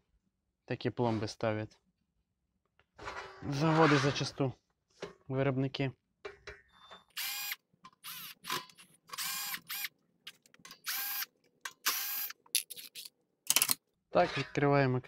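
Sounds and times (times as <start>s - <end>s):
cordless drill whirring: 7.2s - 9.9s, 10.8s - 12.4s.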